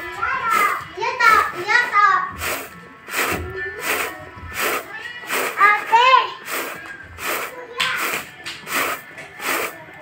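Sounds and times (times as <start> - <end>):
children talking: 0.0 - 10.0
rice grains swishing in tray: 2.4 - 9.8.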